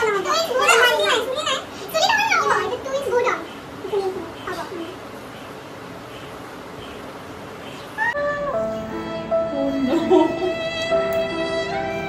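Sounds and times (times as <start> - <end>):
girls laughing and chattering: 9.6 - 10.9.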